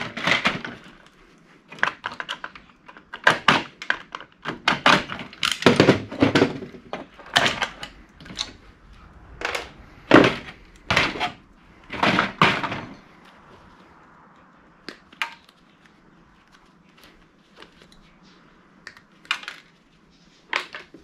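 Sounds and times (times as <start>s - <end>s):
plastic parts knocking and clattering: 0.0s - 1.1s, 1.7s - 8.5s, 10.2s - 13.0s, 18.9s - 19.8s.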